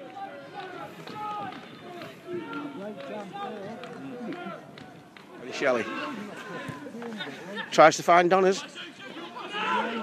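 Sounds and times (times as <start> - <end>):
people calling out outdoors: 0.0 - 10.0.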